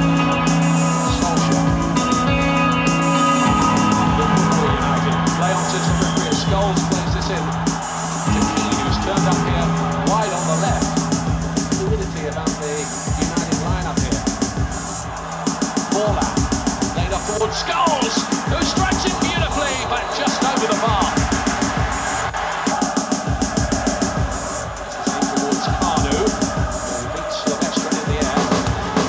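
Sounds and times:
steady drum beat: 0:00.0 - 0:29.0
electric guitar with effects: 0:01.8 - 0:04.1.

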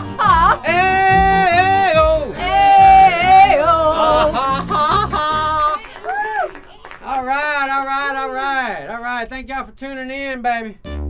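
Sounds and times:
backing track with low beat: 0:00.0 - 0:05.8
man singing held wordless notes: 0:00.1 - 0:05.6.

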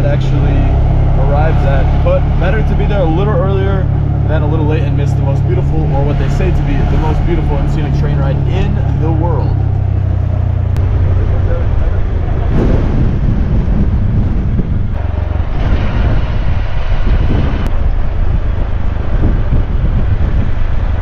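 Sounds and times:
auto-rickshaw engine running: 0:00.0 - 0:21.0
wind and road noise: 0:00.0 - 0:21.0.

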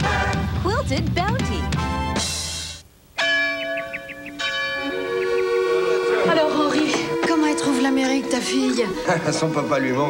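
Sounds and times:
church bell tolling: 0:03.2 - 0:08.4.

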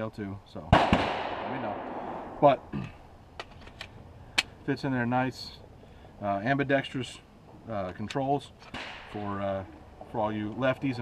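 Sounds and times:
gunshot echo: 0:00.7 - 0:02.6, 0:08.7 - 0:09.2.

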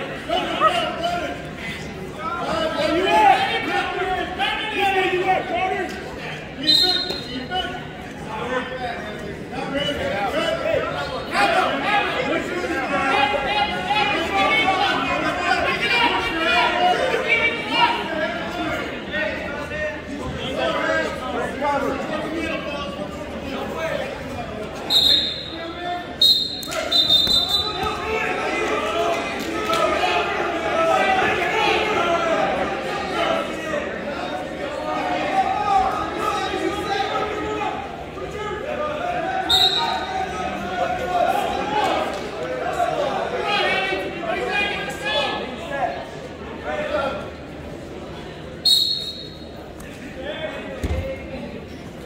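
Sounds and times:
crowd chatter echoing: 0:00.0 - 0:52.0
referee's whistle blasts: 0:06.6 - 0:07.5, 0:24.8 - 0:27.9, 0:39.4 - 0:40.1, 0:48.6 - 0:49.6.

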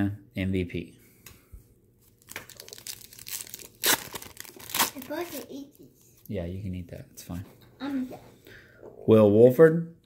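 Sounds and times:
wax paper wrapper crinkling: 0:02.0 - 0:06.3
paper ripping: 0:02.2 - 0:05.5.

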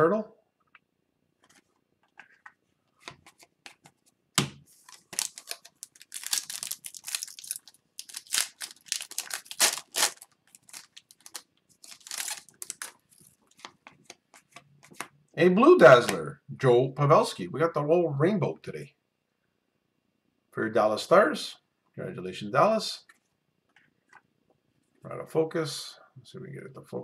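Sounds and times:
foil wrapper tearing and crinkling: 0:04.8 - 0:13.4.

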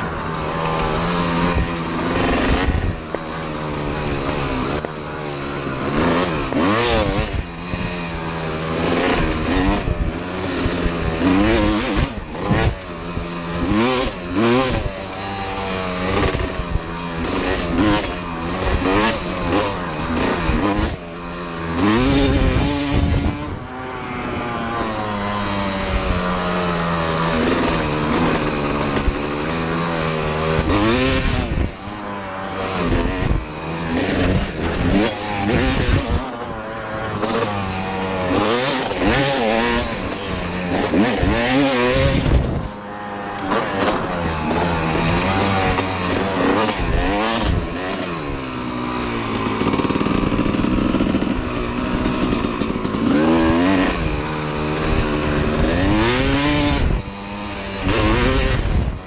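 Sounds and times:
two-stroke motorcycle engine revving: 0:00.0 - 0:59.0.

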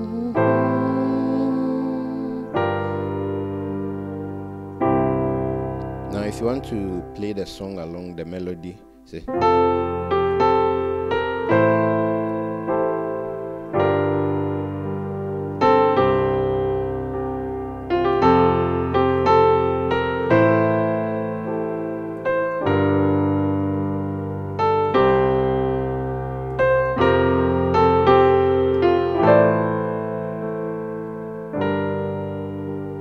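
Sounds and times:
piano playing slow chords: 0:00.0 - 0:33.0.

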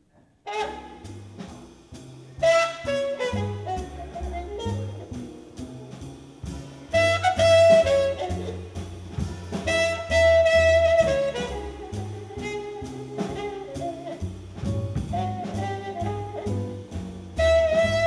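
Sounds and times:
upright bass walking: 0:00.2 - 0:18.0
trumpet leading: 0:00.4 - 0:01.6, 0:02.4 - 0:05.3, 0:06.9 - 0:08.9, 0:09.5 - 0:18.0
drum kit: 0:00.4 - 0:18.0
horn section ensemble chords: 0:00.5 - 0:18.0.

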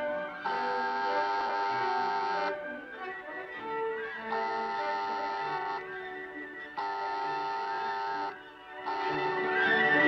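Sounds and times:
orchestral strings: 0:00.0 - 0:10.0.

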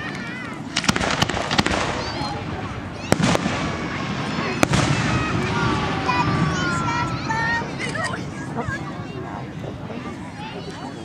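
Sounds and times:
fireworks bangs: 0:00.6 - 0:08.4.

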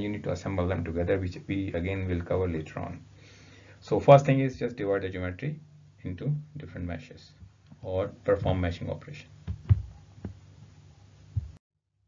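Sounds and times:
faint low hum: 0:00.0 - 0:11.6
soft low thumps: 0:07.4 - 0:08.7, 0:09.4 - 0:10.4, 0:11.3 - 0:11.6.

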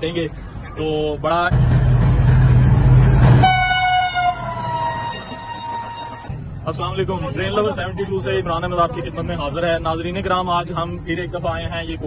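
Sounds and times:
train rumbling past: 0:01.5 - 0:06.6
train horn: 0:03.2 - 0:06.3.

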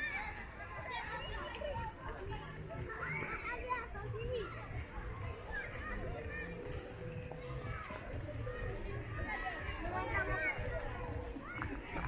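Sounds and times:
children talking: 0:00.0 - 0:12.0.

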